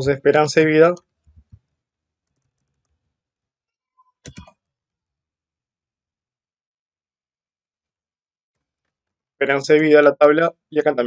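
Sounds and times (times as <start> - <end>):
keyboard keystrokes: 4.2 - 4.5.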